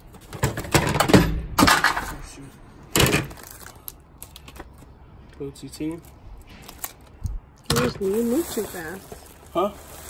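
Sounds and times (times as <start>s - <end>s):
items rustling in plastic tote: 7.7s - 10.0s.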